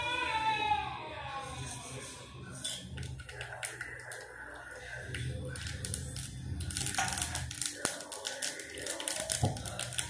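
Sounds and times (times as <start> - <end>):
hot oil crackling and popping: 2.6 - 10.0.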